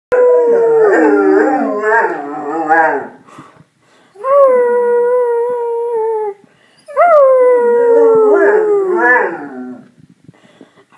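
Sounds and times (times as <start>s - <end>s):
dog howling: 0.1s - 3.2s, 6.9s - 9.8s.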